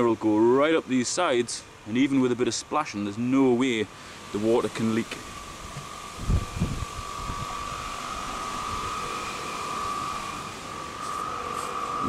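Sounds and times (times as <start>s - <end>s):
steady mechanical whine: 0.0s - 12.0s
light hiss: 0.1s - 12.0s.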